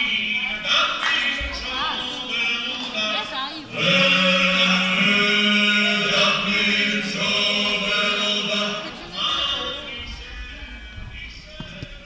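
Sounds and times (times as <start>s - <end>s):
choir singing: 0.0s - 11.6s.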